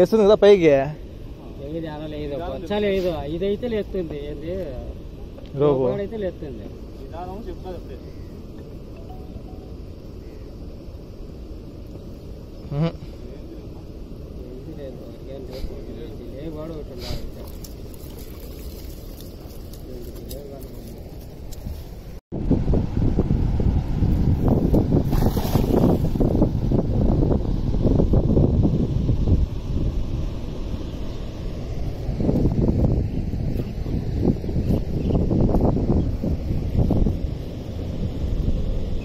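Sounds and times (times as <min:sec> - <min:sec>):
wind buffeting microphone: 0:14.4 - 0:39.0.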